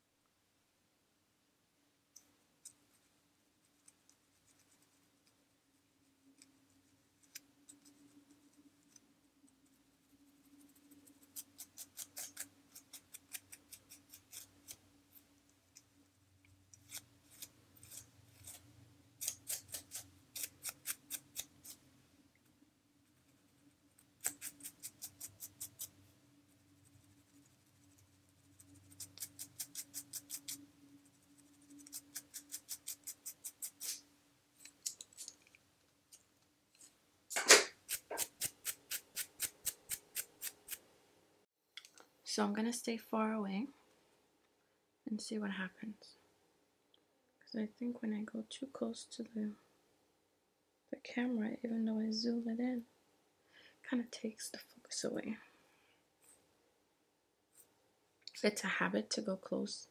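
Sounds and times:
scratching scalp through hair: 0:02.6 - 0:05.4, 0:06.3 - 0:15.8, 0:16.7 - 0:21.8, 0:23.0 - 0:35.6, 0:36.7 - 0:40.8.

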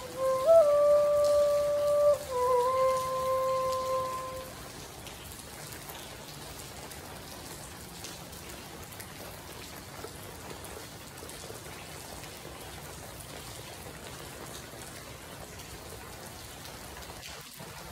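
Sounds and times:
flute holding a note: 0:00.0 - 0:04.6
rain pattering on tent roof: 0:00.0 - 0:17.9.

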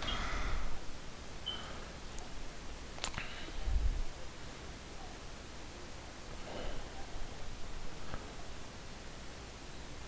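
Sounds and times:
low microphone hiss: 0:00.0 - 0:10.0.

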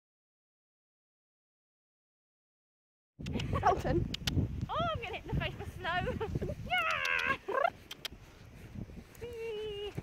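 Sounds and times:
high-pitched warbling laughter: 0:07.1 - 0:07.8.

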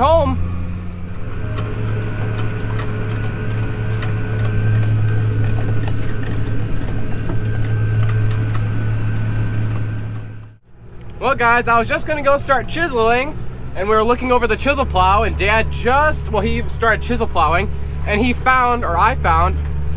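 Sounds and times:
tractor engine running: 0:00.0 - 0:19.9.

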